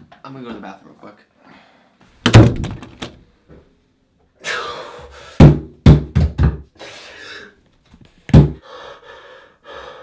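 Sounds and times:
fists pounding on counter: 0:05.4 - 0:06.7, 0:08.3 - 0:08.6.

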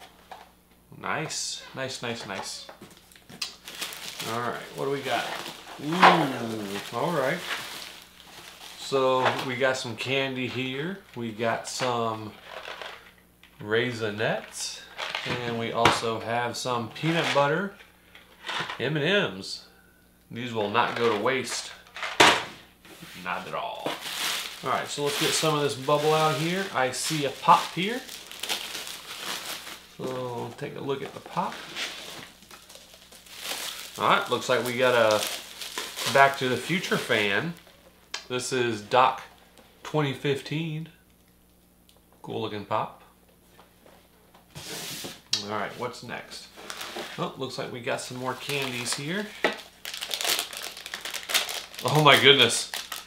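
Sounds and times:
bubble wrap crinkling: 0:02.9 - 0:09.8, 0:23.2 - 0:38.1, 0:46.5 - 0:47.3, 0:48.0 - 0:53.0.

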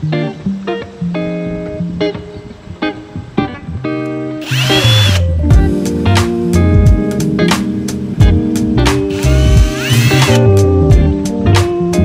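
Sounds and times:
plucked guitar music: 0:00.0 - 0:12.0
power drill whine: 0:04.4 - 0:05.2, 0:09.1 - 0:10.4.

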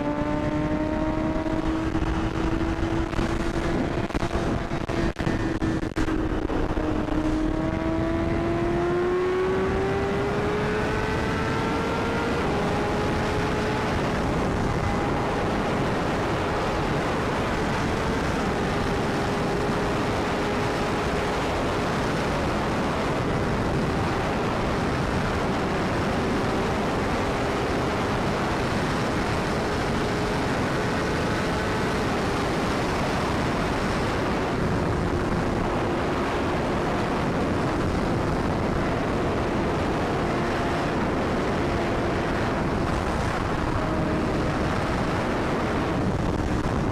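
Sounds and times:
motorcycle engine accelerating: 0:00.0 - 0:46.9
wind rush on microphone: 0:00.0 - 0:46.9.

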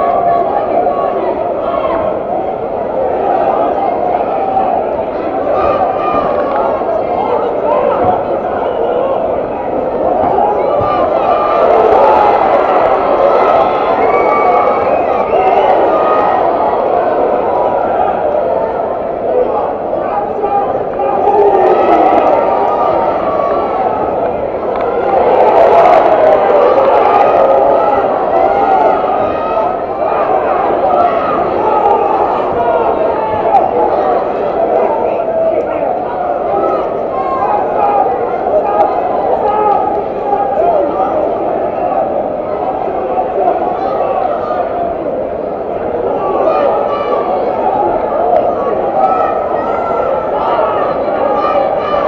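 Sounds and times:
crowd shouting and talking: 0:00.0 - 0:52.0.

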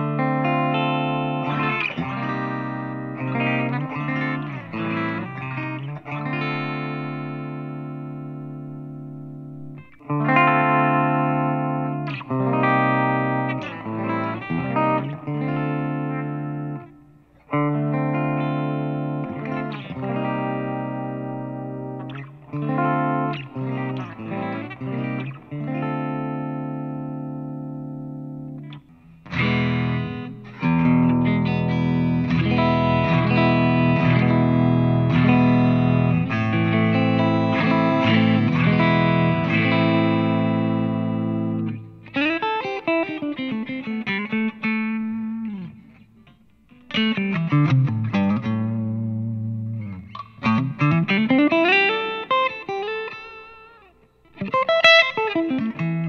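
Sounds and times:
electric guitar strummed chords: 0:00.0 - 0:56.0
picked electric guitar passage: 0:00.0 - 0:56.0.

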